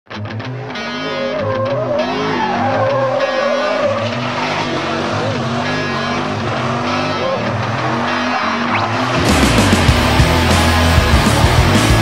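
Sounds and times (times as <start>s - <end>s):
rock song with electric guitar: 0.1s - 12.0s
car tires squealing: 0.4s - 9.8s.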